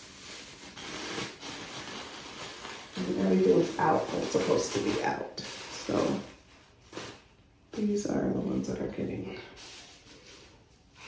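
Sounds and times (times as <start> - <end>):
plastic shower cap crinkling: 0.0 - 7.3.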